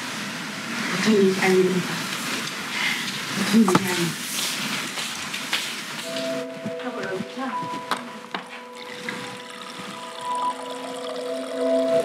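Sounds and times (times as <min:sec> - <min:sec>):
water pouring into a glass: 0:08.6 - 0:12.0.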